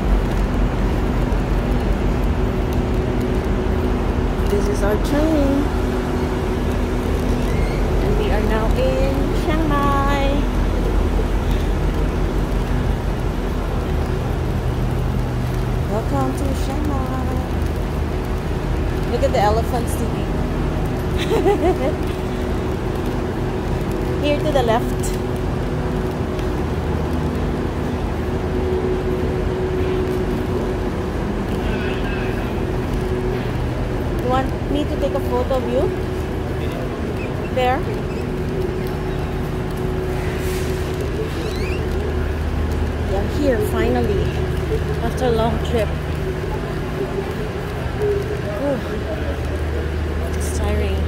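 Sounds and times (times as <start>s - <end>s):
distant voices: 0.0s - 51.0s
low rumble and hum: 0.0s - 51.0s.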